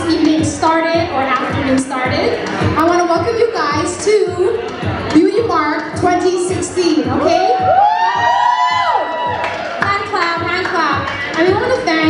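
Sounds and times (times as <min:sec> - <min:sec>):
dance music with steady beat: 0:00.0 - 0:12.0
crowd cheering: 0:07.1 - 0:11.7.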